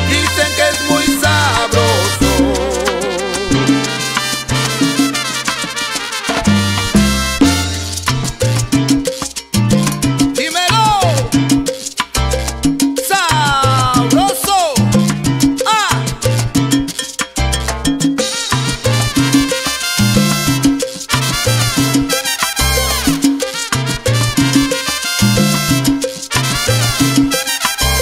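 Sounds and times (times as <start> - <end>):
salsa music: 0.0 - 28.0
sliding melodic lines: 0.1 - 28.0.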